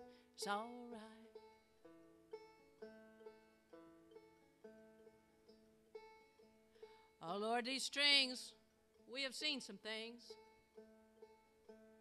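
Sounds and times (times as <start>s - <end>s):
plucked stringed instrument: 0.0s - 12.0s.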